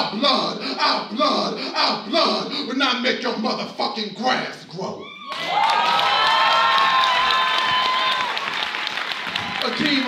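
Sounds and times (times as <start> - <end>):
long held shout of cheering: 5.0 - 10.0
audience applauding: 5.3 - 10.0.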